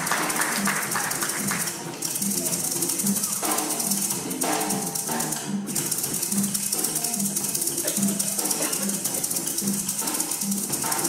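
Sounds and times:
maracas shaken fast: 0.0 - 11.0.

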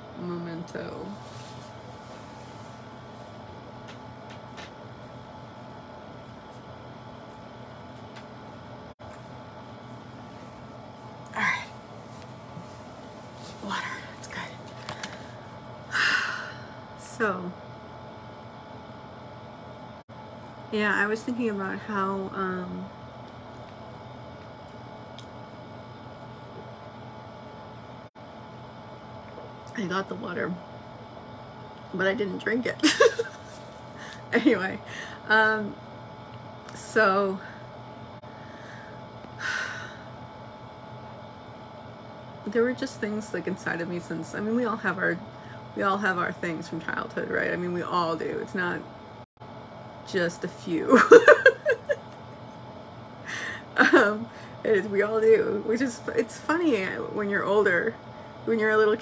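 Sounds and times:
appliance mechanical hum: 0.0 - 59.0.

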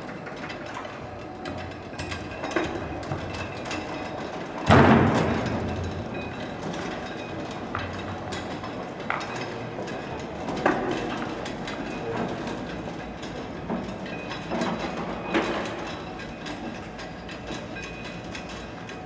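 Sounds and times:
steel chains clanking and rattling: 0.0 - 19.0.

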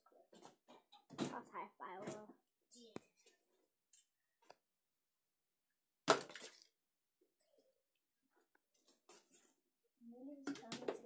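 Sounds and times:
child's voice: 1.3 - 3.2, 10.0 - 11.0.

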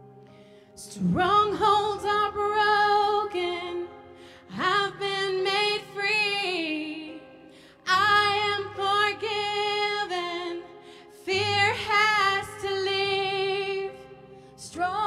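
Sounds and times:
woman singing into a microphone: 0.8 - 15.0.

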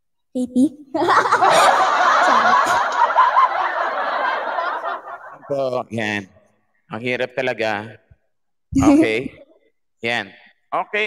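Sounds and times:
crowd laughing: 1.0 - 5.8
man speaking: 5.4 - 8.1, 8.8 - 11.0.

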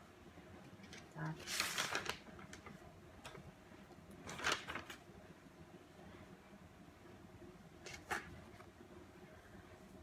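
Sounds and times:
book page rustling: 1.4 - 2.7, 4.2 - 5.0.

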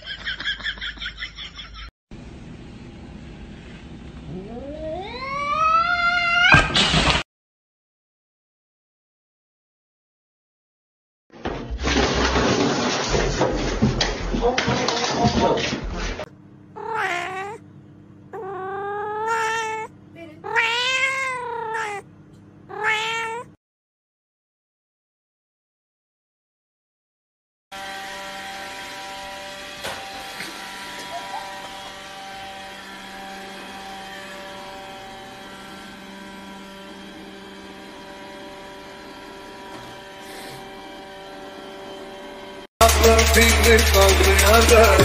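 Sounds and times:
cat meowing: 4.3 - 6.6, 16.8 - 17.6, 18.4 - 22.1, 22.7 - 23.6.

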